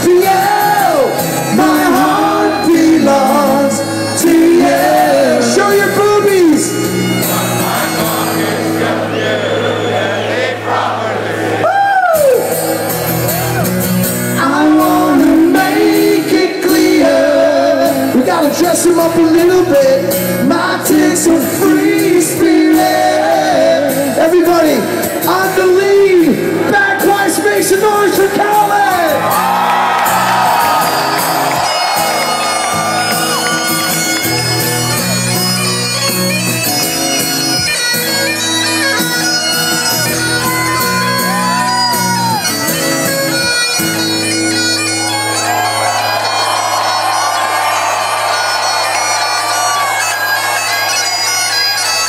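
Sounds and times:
bagpipes playing: 1.0 - 9.1, 28.4 - 52.0.

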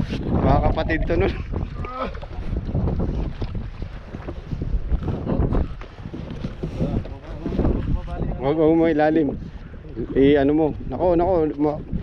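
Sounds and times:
water sloshing against boat hull: 0.0 - 12.0
wind buffeting microphone: 0.0 - 12.0.

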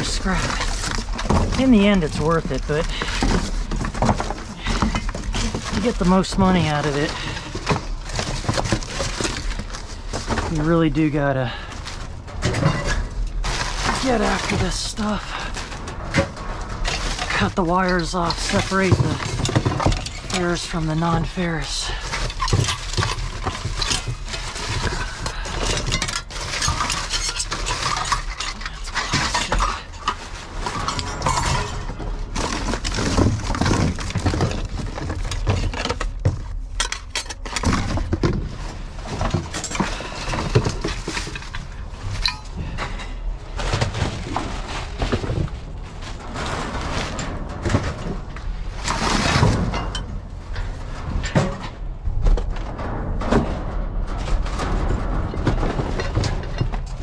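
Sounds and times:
clinks and knocks of hard items: 0.0 - 57.0
rustling and crinkling of scrap: 0.0 - 57.0.

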